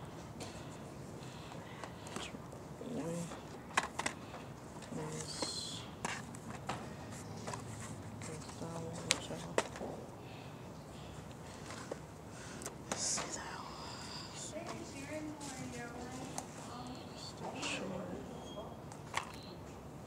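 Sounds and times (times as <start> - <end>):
faint indistinct voices: 13.0 - 18.9.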